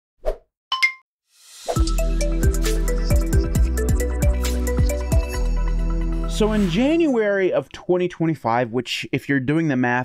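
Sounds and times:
electronic music with bass hits: 1.8s - 7.1s.

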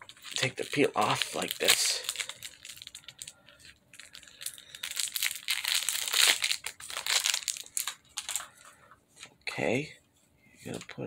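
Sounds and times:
plastic wrapper crinkling: 0.0s - 9.4s.

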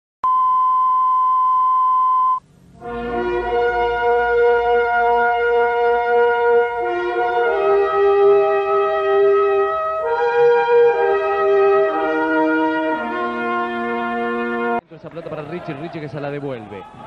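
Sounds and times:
steady beep: 0.2s - 2.4s
intro music with held chords: 2.4s - 14.8s.

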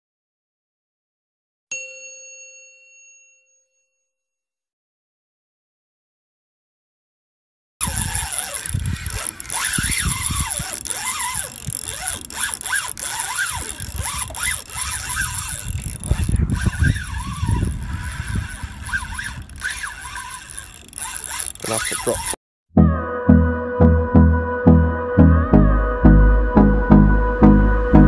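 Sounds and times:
wind rumbling on microphone: 7.8s - 21.4s
short high squeals: 7.8s - 22.4s.

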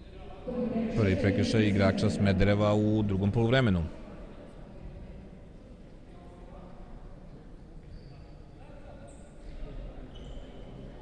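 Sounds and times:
distant echoing voices: 0.0s - 6.9s.

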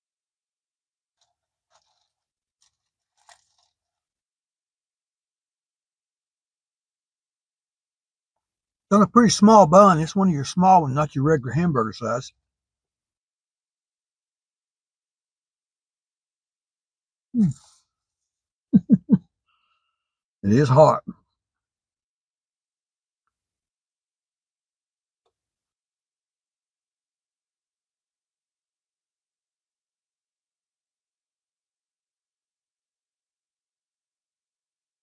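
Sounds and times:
crunching and chewing: 1.1s - 4.3s
man humming hmm: 17.4s - 17.7s, 18.8s - 19.2s.

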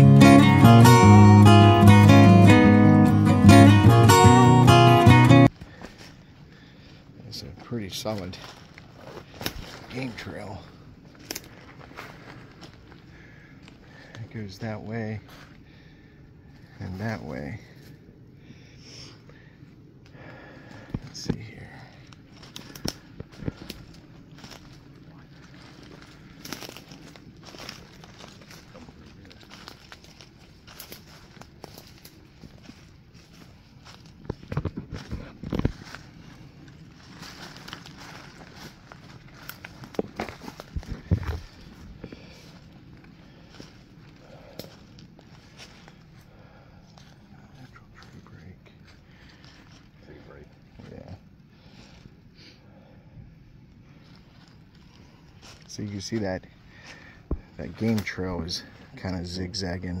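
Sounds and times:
footsteps crunching through leaves: 8.0s - 14.1s, 22.0s - 50.9s, 54.0s - 59.0s
twigs snapping: 8.5s - 9.9s, 11.1s - 13.0s, 22.0s - 32.3s, 33.8s - 46.0s.

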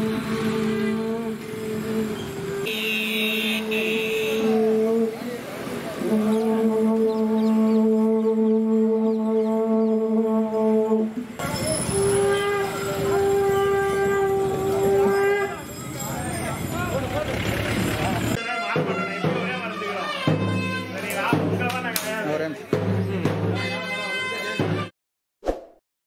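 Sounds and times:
street crowd noise: 0.0s - 24.9s
reed wind instrument held notes: 0.7s - 5.4s, 6.0s - 16.6s.

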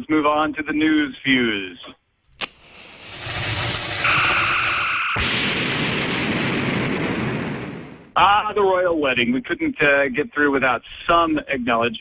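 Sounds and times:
fuse hissing and sizzling: 2.4s - 5.1s
two-note electronic tone: 4.0s - 5.3s.

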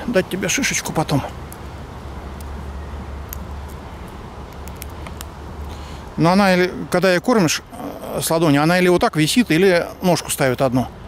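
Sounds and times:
faint sharp clicks: 3.3s - 3.8s, 4.5s - 5.8s.

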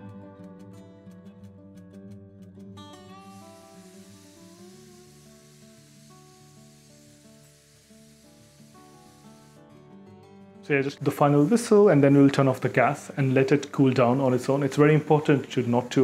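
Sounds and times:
background music: 0.0s - 15.6s
pressure cooker whistle hissing: 3.0s - 9.6s.

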